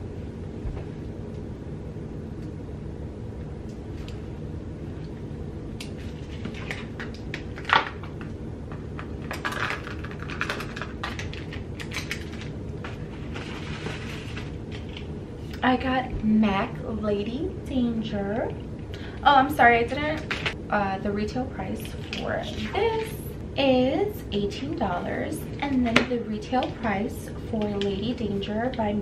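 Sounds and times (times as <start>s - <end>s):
low room hum: 0.0s - 29.0s
brushes and packaging clicks and rustles: 5.8s - 15.1s.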